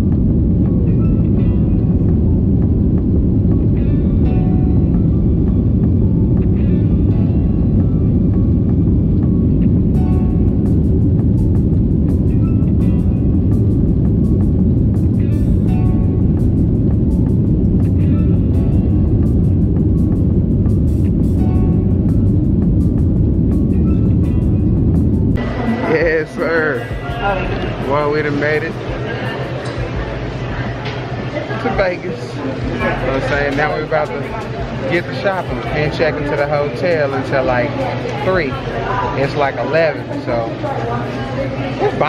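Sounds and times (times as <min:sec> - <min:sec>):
airliner cabin roar: 0:00.0 - 0:42.0
music playing: 0:00.0 - 0:42.0.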